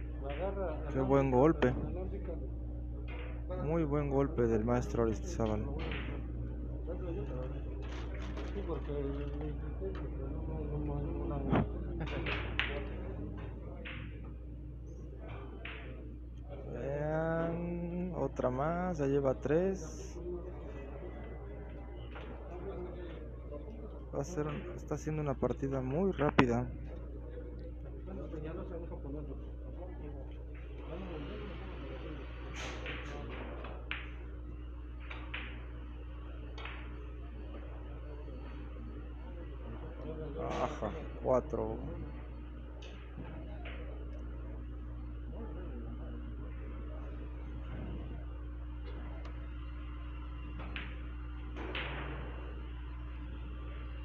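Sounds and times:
steady low hum: 0.0s - 54.0s
low background voices: 4.5s - 18.4s, 19.5s - 25.6s, 26.3s - 54.0s.

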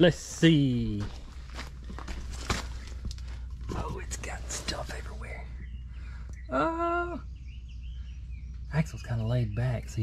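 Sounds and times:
low steady hum: 0.0s - 10.0s
small scuffs: 0.9s - 3.4s
footsteps: 0.9s - 5.3s.

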